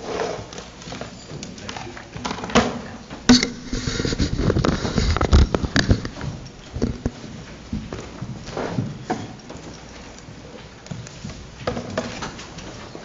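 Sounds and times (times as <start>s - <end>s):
microphone handling knocks: 3.3s - 7.2s.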